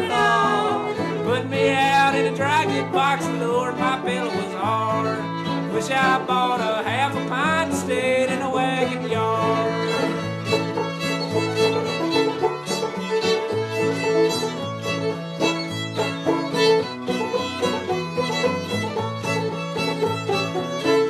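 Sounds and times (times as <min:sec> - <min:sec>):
banjo and guitar rhythm: 0:00.0 - 0:21.0
fiddle melody: 0:00.0 - 0:21.0.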